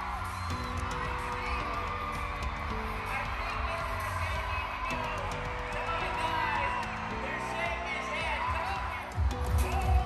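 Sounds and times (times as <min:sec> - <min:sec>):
crowd cheering: 0:00.0 - 0:10.0
loud music over sound system: 0:00.0 - 0:10.0.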